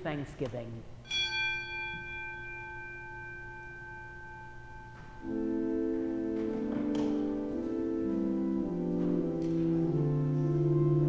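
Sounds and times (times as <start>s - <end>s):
bell ringing: 1.0s - 7.9s.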